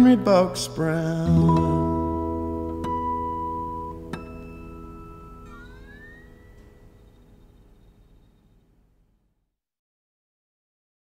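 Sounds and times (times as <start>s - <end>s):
acoustic guitar chord ringing: 0.0s - 8.0s
sliding high guitar note: 1.3s - 7.0s.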